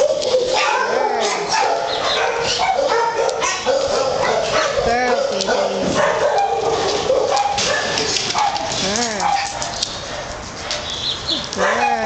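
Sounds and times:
dogs barking and yelping: 0.0 - 12.0.

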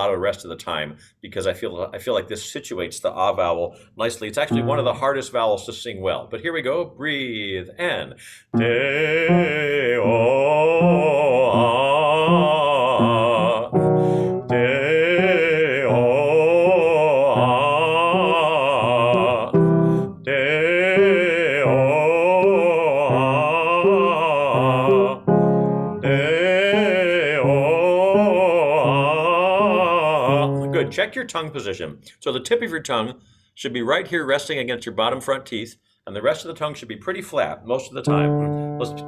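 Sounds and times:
man singing vocal warm-up: 7.1 - 31.3, 38.1 - 39.0.

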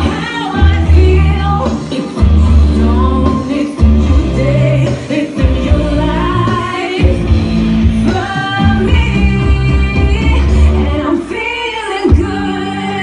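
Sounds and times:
woman singing into a microphone: 0.0 - 13.0.

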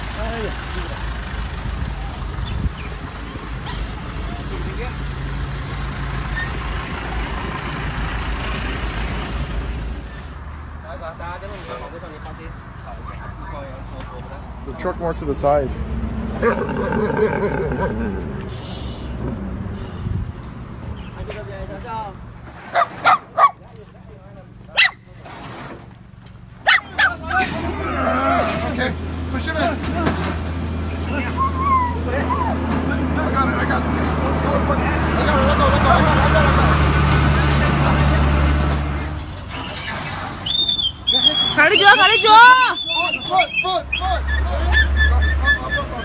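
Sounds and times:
vehicle engine rumble and road noise: 0.0 - 46.0
voices: 10.8 - 19.4, 26.6 - 46.0
caged dogs barking: 16.2 - 18.4, 22.7 - 23.6, 24.7 - 25.0, 26.6 - 27.5, 40.5 - 46.0.

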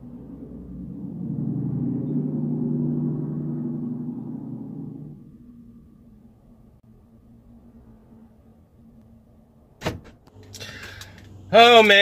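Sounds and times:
low gong-like droning tone: 0.0 - 8.4.

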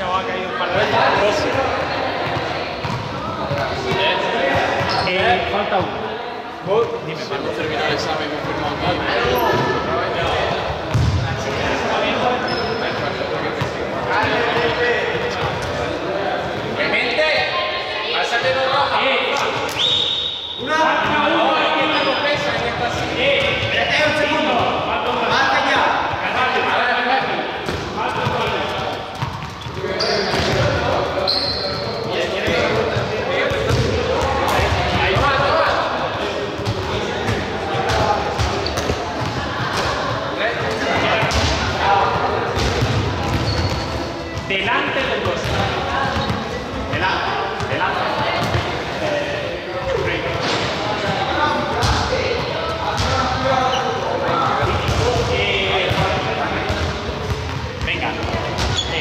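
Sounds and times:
people talking: 0.0 - 59.0
balls bouncing on hall floor: 0.8 - 5.9, 8.2 - 11.8, 22.3 - 25.4, 27.6 - 35.8, 36.5 - 48.8, 49.9 - 53.5, 54.2 - 59.0.

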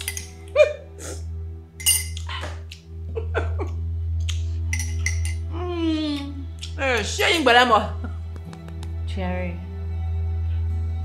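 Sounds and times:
teaspoon clinking against a mug: 1.8 - 2.2, 4.7 - 5.5.

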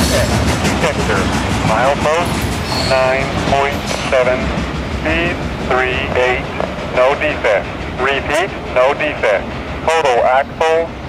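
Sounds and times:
person talking: 0.0 - 10.9
freight train rumbling: 0.0 - 11.0
train wheels clattering: 0.0 - 11.0.

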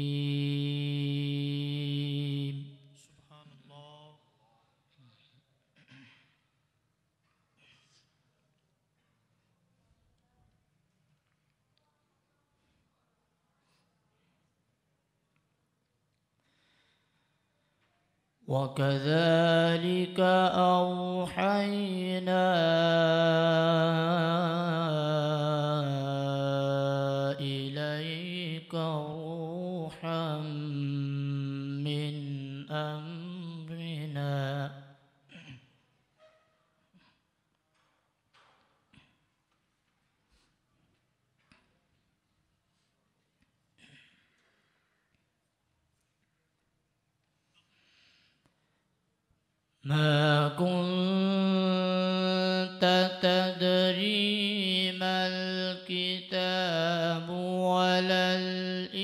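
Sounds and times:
man reciting melodically: 0.0 - 4.6, 18.4 - 35.2, 49.8 - 59.0.

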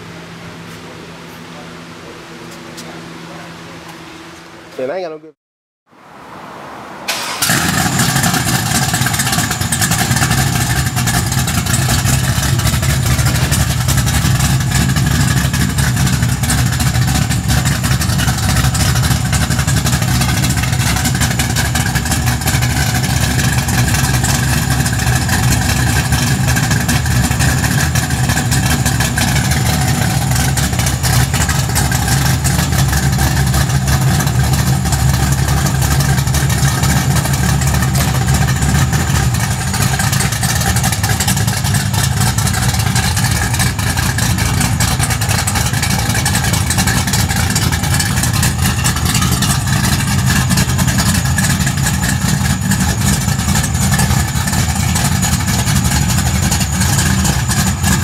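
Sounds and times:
car engine idling loudly: 7.1 - 58.0.

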